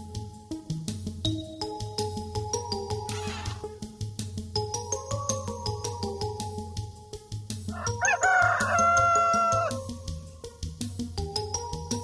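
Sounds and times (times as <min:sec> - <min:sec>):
children's song with steady beat: 0:00.0 - 0:12.0
rooster crowing: 0:07.7 - 0:09.8.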